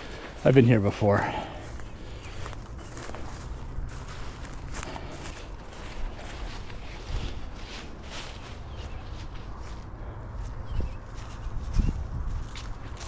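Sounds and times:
footsteps through dry grass: 0:00.0 - 0:13.0
steady low rumble: 0:00.0 - 0:13.0.

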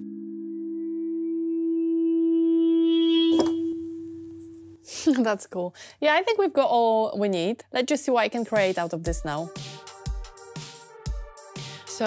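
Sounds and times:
synthesizer pad sustained note: 0:00.0 - 0:04.8.

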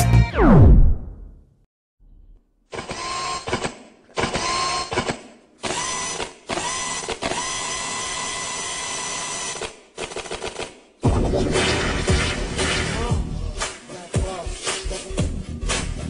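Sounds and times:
drill-like whirring in music: 0:02.8 - 0:03.6, 0:05.7 - 0:09.7.

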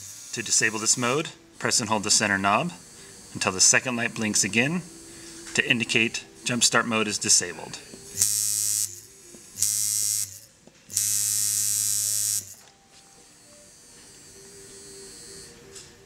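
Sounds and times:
tattoo machine buzzing: 0:00.0 - 0:05.5, 0:07.3 - 0:15.8.

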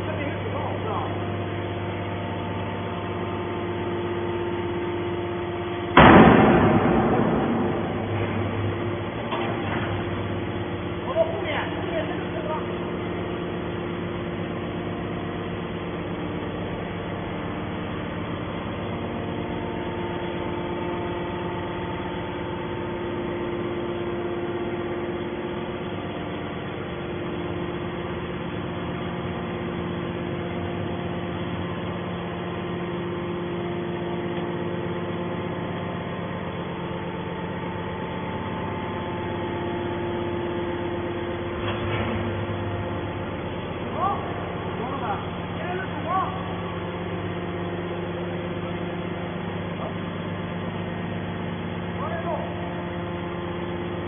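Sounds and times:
hydraulic machine hum: 0:00.0 - 0:54.0.

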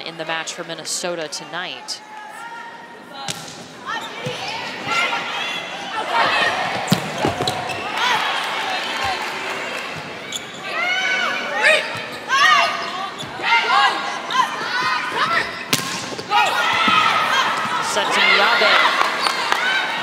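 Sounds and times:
volleyball hits: 0:03.2 - 0:04.5, 0:06.7 - 0:07.9, 0:15.6 - 0:17.8
shoes squeaking on court: 0:06.8 - 0:08.0, 0:10.3 - 0:10.8, 0:11.9 - 0:13.5.

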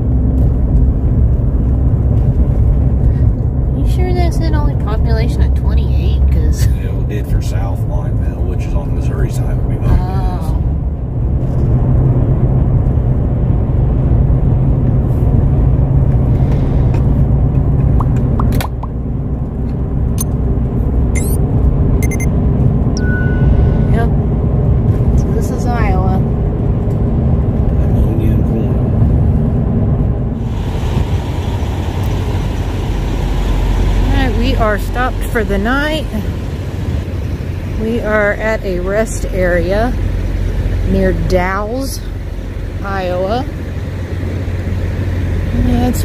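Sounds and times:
truck road noise rumble: 0:00.0 - 0:46.0.

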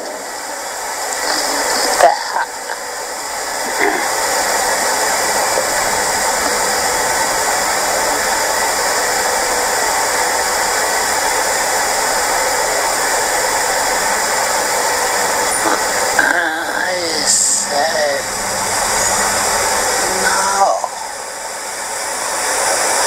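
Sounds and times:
steady loud rushing hiss: 0:00.0 - 0:23.0.

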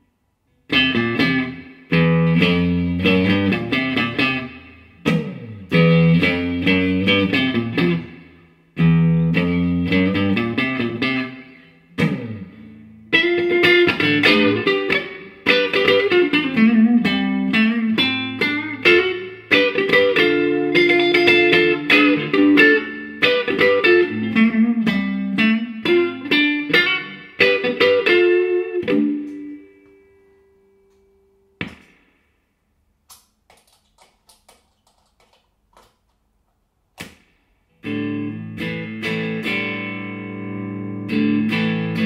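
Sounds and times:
electric guitar riff: 0:00.7 - 0:30.9, 0:37.7 - 0:42.0.

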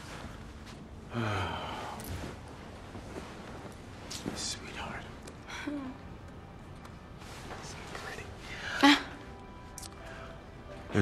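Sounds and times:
person sighing: 0:01.1 - 0:02.1.

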